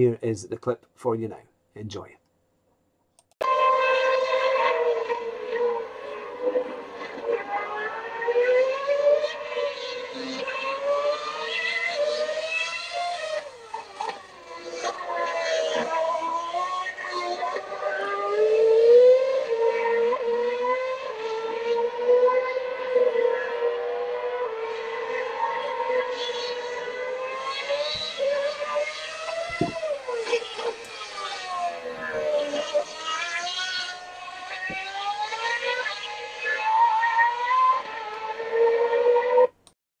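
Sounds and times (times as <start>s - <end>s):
racing car engines wailing: 3.4s - 39.6s.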